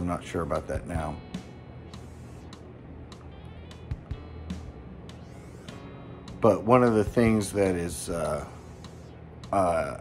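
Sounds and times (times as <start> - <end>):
quiet guitar music: 0.0 - 10.0.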